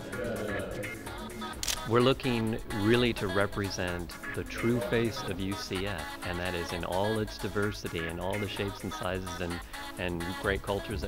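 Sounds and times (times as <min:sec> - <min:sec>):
background music: 0:00.0 - 0:11.0
camera shutter click: 0:01.5 - 0:01.9.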